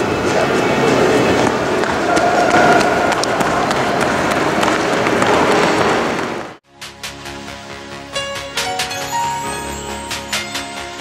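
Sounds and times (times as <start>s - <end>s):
voices echoing in hall: 0.0s - 6.5s
running footsteps on stone floor: 0.2s - 6.6s
music: 6.6s - 11.0s.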